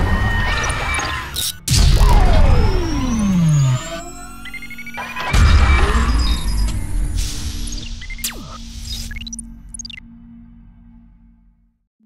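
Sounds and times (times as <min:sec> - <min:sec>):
deep boom: 0:01.7 - 0:03.6.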